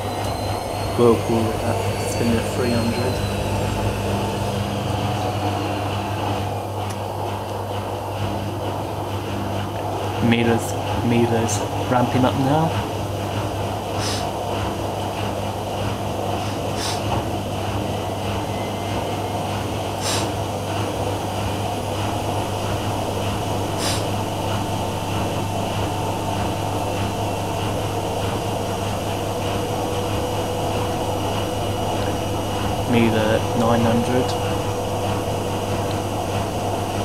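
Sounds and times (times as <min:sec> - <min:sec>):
washing machines spinning: 0:00.0 - 0:37.0.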